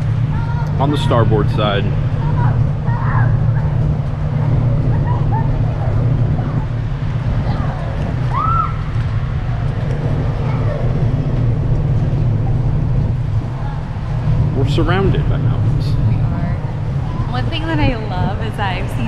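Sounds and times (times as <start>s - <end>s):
faint voices: 0.0s - 19.0s
wind buffeting microphone: 0.0s - 19.0s.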